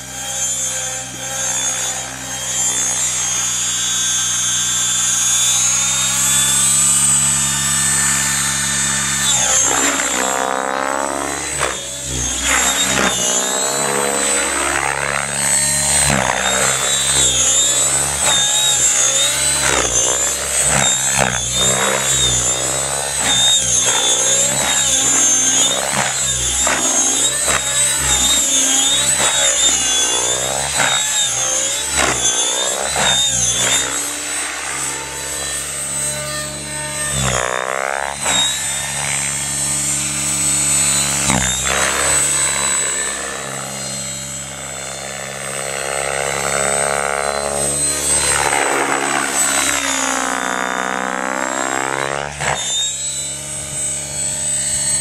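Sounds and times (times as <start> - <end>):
helicopter motor whine: 0.0 - 55.0
rotor hum: 0.0 - 55.0.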